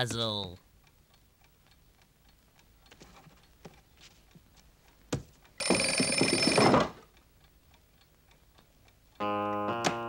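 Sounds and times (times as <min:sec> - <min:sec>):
alarm clock ticking: 0:05.5 - 0:08.1.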